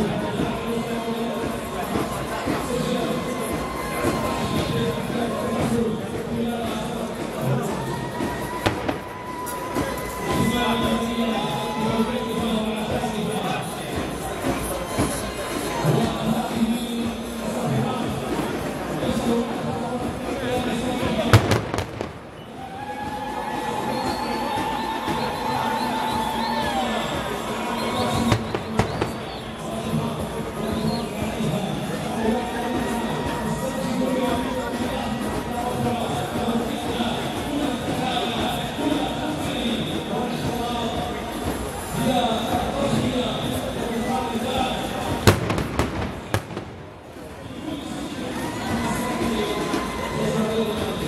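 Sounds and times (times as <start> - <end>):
crowd noise: 0.0 - 51.0.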